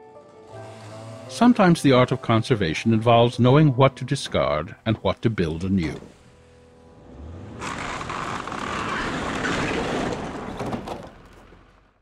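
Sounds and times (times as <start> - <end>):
truck engine rumble: 0.4 - 12.0
timber cracking and metal roof crashing: 7.6 - 11.9.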